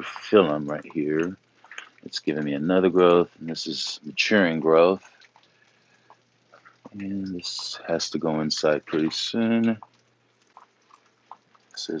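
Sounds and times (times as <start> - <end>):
faint water drips: 0.0 - 12.0.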